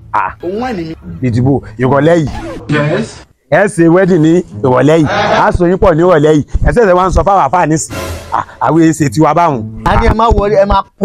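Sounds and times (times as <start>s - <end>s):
man's quavering voice: 4.5s - 5.9s.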